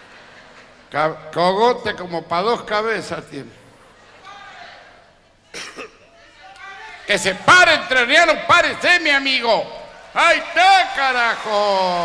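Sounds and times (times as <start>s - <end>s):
man coughing: 5.5s - 6.1s.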